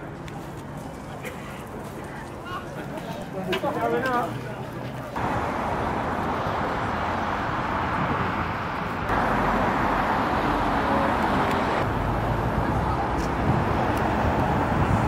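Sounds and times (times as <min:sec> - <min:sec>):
road traffic: 0:00.0 - 0:15.0.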